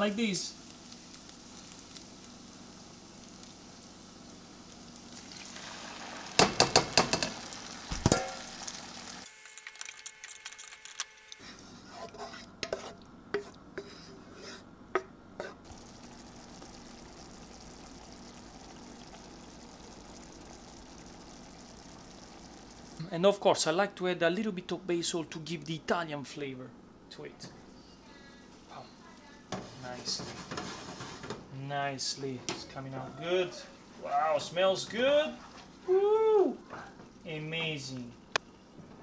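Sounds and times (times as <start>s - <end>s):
onions sizzling in a frying pan: 0.0s - 11.4s, 15.6s - 23.1s
bowl knocking and scraping on pan: 6.4s - 8.5s, 12.2s - 15.6s, 29.5s - 31.4s
wooden spoon stirring against pan: 11.4s - 17.3s, 29.5s - 31.4s.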